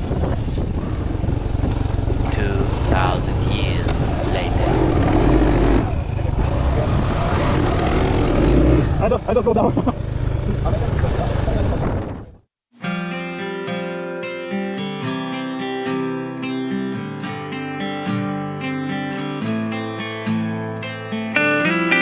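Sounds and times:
indistinct voices: 0:02.3 - 0:05.8.

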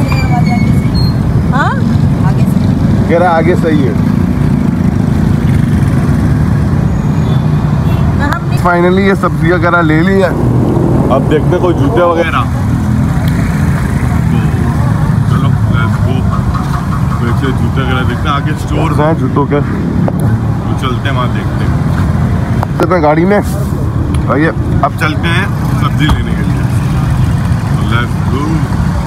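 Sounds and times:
street traffic rumble: 0:00.0 - 0:29.0
man speaking: 0:11.0 - 0:12.6, 0:17.2 - 0:19.8, 0:20.6 - 0:21.8
vehicle engine running: 0:23.6 - 0:29.0.

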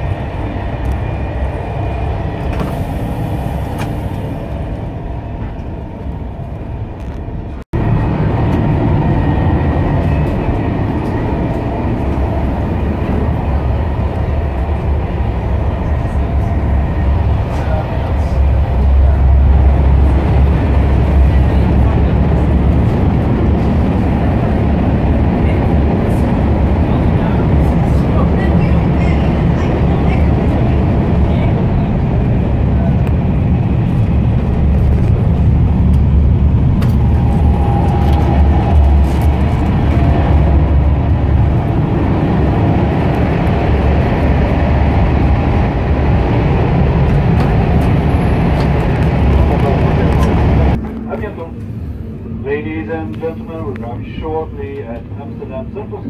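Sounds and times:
train low rumble from inside: 0:00.0 - 0:56.0.

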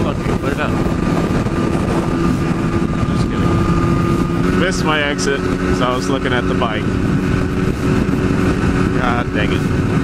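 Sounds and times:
motorcycle engine cruising: 0:00.0 - 0:10.0
wind and road rush: 0:00.0 - 0:10.0.

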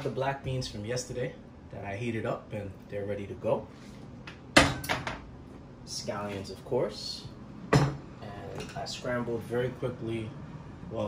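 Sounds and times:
kitchenware clinking: 0:04.6 - 0:05.3, 0:07.7 - 0:08.9
kitchenware knocking on counter: 0:07.7 - 0:08.0.

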